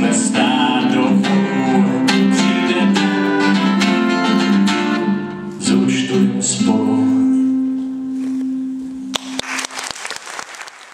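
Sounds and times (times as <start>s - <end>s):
acoustic guitar chord ringing: 0.0s - 9.2s
audience applause: 9.2s - 10.9s.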